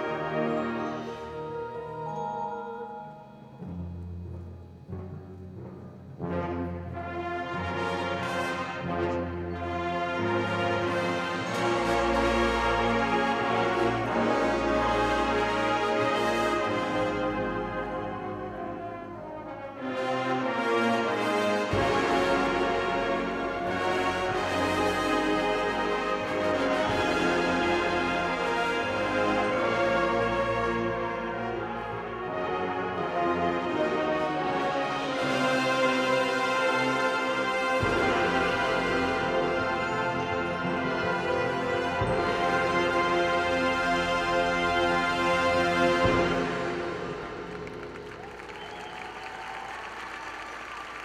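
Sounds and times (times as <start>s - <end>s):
marching band brass and percussion: 0.0s - 2.4s, 3.6s - 51.0s.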